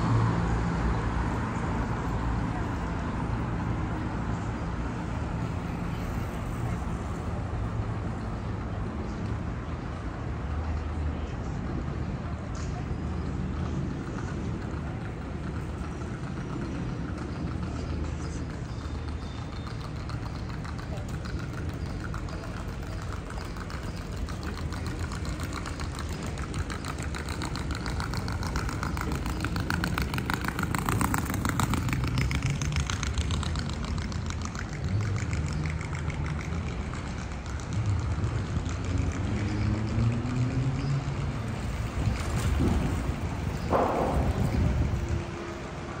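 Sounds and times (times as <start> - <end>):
car engines passing: 0.0 - 46.0
short knock: 43.7 - 45.4.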